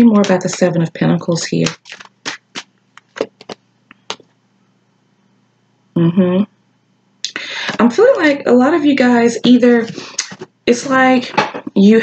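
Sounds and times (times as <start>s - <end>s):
cards snapping and sliding: 1.6s - 3.6s.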